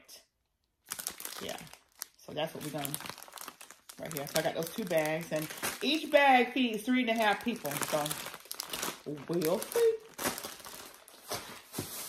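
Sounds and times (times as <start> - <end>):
plastic bags crinkling: 0.8 - 12.0.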